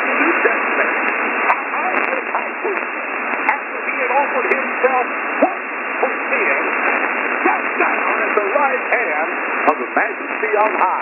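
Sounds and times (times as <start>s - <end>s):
static hiss: 0.0s - 11.0s
man preaching over radio: 9.7s - 11.0s.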